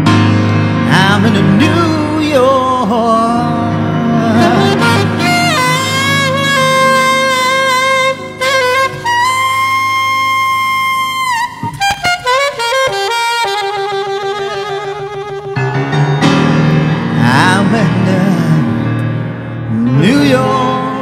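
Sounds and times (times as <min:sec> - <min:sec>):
piano chords: 0:00.0 - 0:21.0
saxophone jazz solo: 0:03.7 - 0:17.2.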